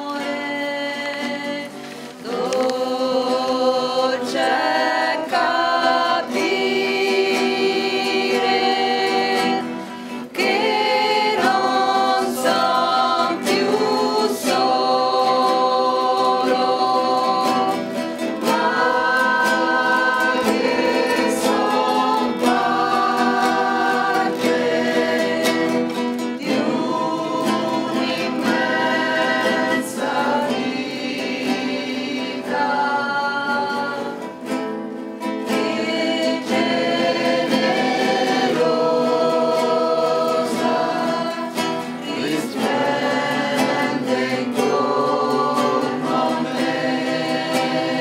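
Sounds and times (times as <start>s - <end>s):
group singing carol in unison: 0.0s - 48.0s
strummed acoustic guitars: 0.0s - 48.0s.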